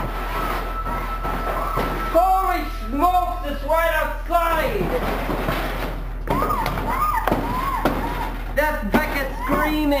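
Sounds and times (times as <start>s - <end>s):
girl screaming: 6.3s - 8.4s.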